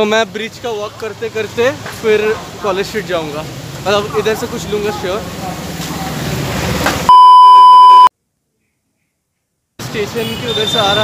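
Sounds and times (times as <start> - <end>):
light street traffic: 0.0 - 7.1, 8.2 - 11.0
electronic bleep tone: 7.1 - 8.1.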